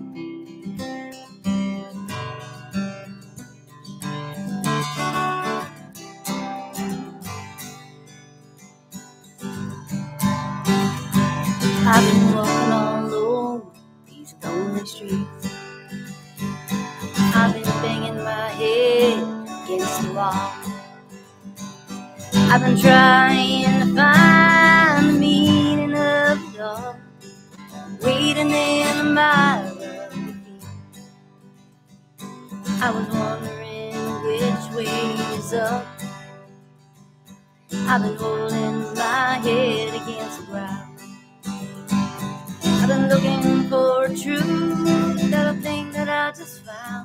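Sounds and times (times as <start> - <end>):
strummed acoustic guitar: 0.0 - 47.0
woman singing: 11.6 - 15.6, 17.1 - 20.9, 22.3 - 27.0, 27.6 - 30.8, 32.6 - 36.1, 37.8 - 41.0, 42.6 - 47.0.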